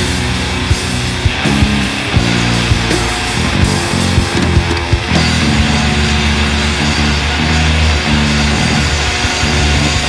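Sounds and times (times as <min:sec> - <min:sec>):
death metal band playing: 0:00.0 - 0:10.0.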